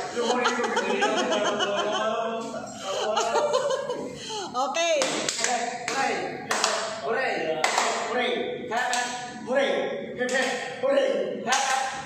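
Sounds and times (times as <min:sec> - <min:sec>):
group of people talking: 0:00.0 - 0:12.0.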